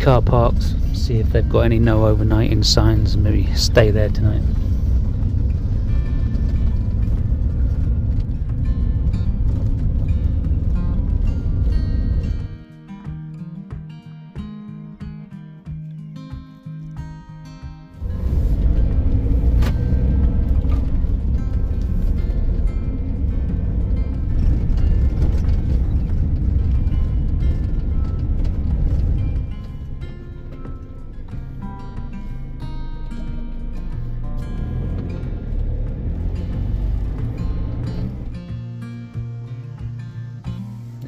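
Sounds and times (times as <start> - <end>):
van engine and road noise: 0.0 - 12.7, 17.0 - 41.0
background music: 0.0 - 41.0.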